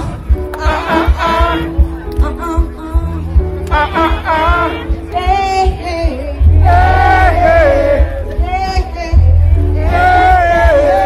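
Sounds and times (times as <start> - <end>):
bass: 0.0 - 11.0
drum beats pulsing: 0.0 - 11.0
live band music: 0.0 - 11.0
woman singing: 0.5 - 11.0.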